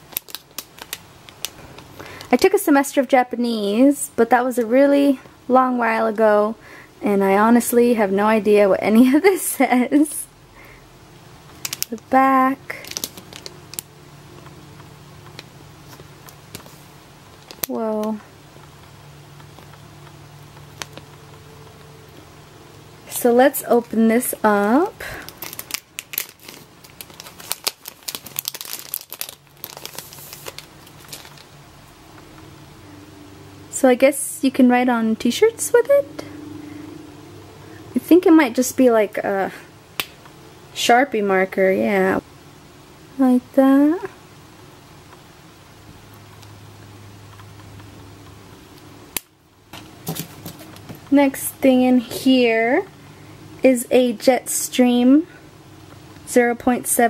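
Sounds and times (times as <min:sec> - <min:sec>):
plastic packaging crinkling: 0:00.0 - 0:02.5, 0:11.5 - 0:13.9, 0:15.2 - 0:18.2, 0:20.4 - 0:21.4, 0:25.0 - 0:31.6, 0:49.8 - 0:51.1
low room hum: 0:00.0 - 0:57.0
plastic pens handled by hand: 0:11.5 - 0:12.1, 0:12.7 - 0:14.5, 0:15.2 - 0:18.7, 0:25.3 - 0:31.5, 0:49.7 - 0:51.2.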